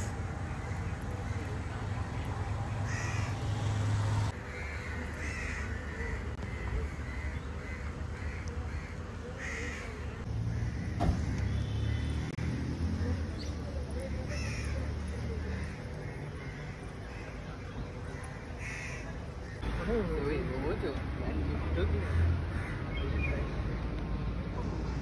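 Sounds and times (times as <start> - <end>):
crows cawing: 2.8 - 3.5, 4.3 - 12.2, 14.2 - 19.6, 22.0 - 22.9.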